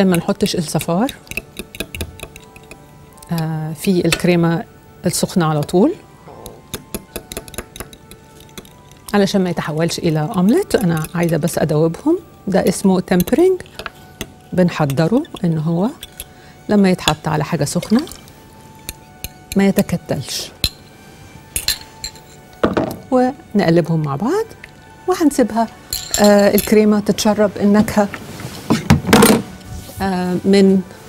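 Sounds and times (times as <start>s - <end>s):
fork clinking against glass bowl: 0.8s - 3.5s
utensils clinking on a saucepan: 10.0s - 11.6s, 21.6s - 22.6s, 25.9s - 26.9s.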